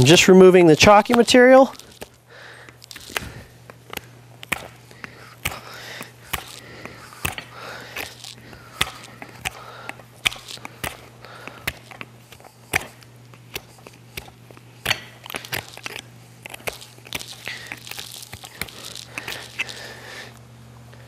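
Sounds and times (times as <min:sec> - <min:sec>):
hoof knife cutting horn: 0:00.0 - 0:20.4
faint steady hum: 0:00.0 - 0:21.0.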